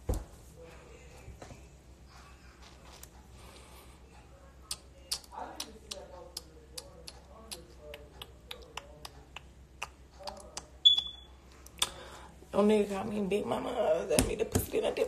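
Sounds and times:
short high beep: 10.8 - 11.3.

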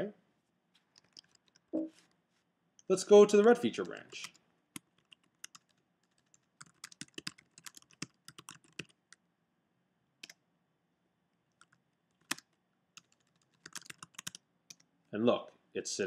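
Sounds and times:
computer keyboard typing: 0.9 - 1.7, 3.3 - 9.2, 11.6 - 14.9.

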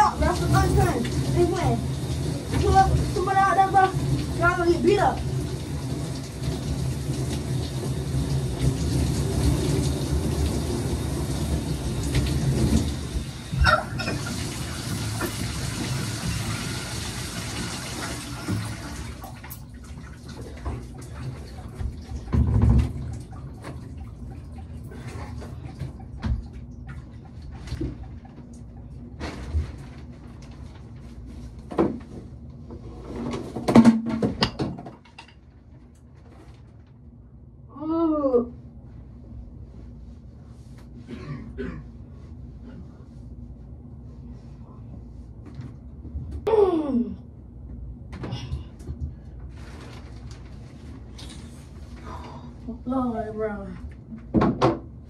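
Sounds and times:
shower water spraying: 0.0 - 19.6.

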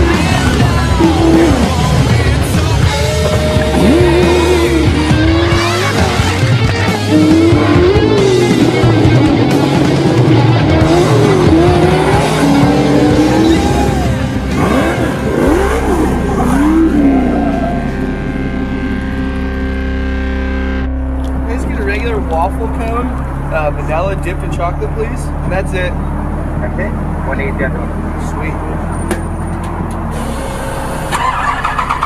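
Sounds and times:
engine revving hard: 0.0 - 21.1
background music: 0.0 - 26.5.

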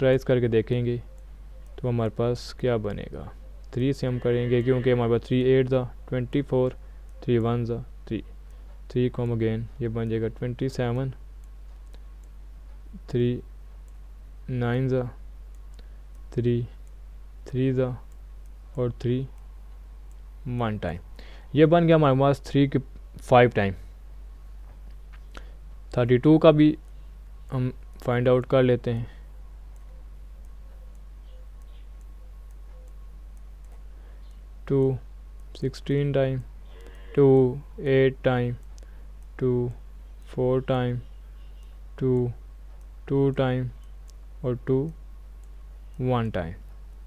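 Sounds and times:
low electrical hum: 0.0 - 47.0
computer mouse clicking: 29.7 - 34.4, 36.4 - 37.5, 38.5 - 39.4.

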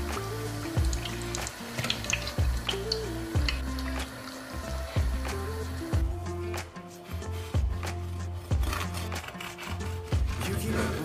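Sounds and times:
instrumental pop music: 0.0 - 11.0.

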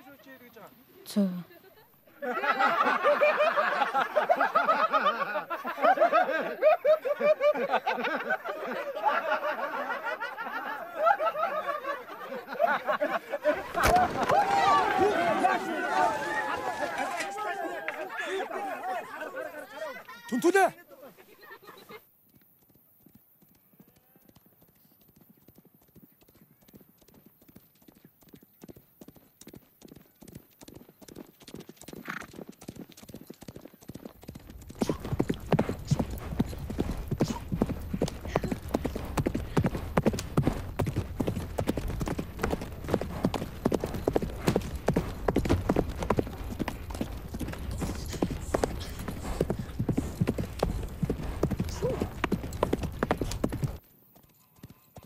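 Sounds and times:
galloping hoofbeats on grass: 22.2 - 55.0.

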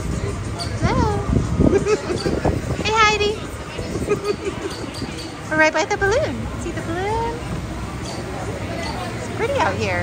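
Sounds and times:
indistinct conversation: 0.0 - 10.0.

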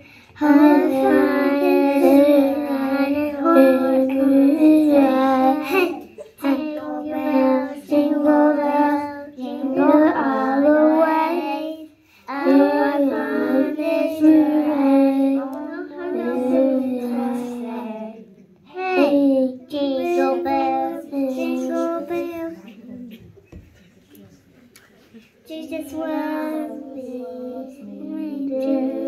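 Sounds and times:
young children singing: 0.0 - 23.3, 25.5 - 29.0.

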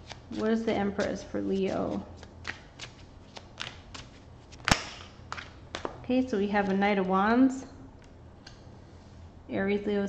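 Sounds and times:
cards being shuffled: 0.0 - 6.0
card snap: 4.6 - 5.9.

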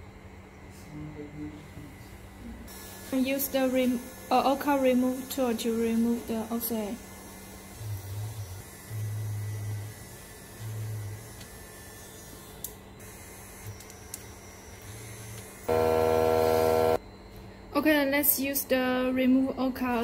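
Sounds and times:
steady mains hum: 0.0 - 20.0
small rotary motor buzzing: 7.0 - 17.0
loud steady buzz: 15.6 - 17.0.

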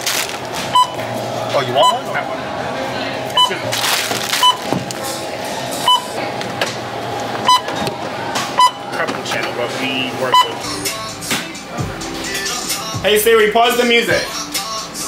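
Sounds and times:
barcode scanner beeping: 0.7 - 1.0, 1.8 - 2.2, 3.3 - 3.7, 4.4 - 4.7, 5.8 - 6.2, 7.4 - 7.8, 8.6 - 8.9, 10.2 - 10.6.

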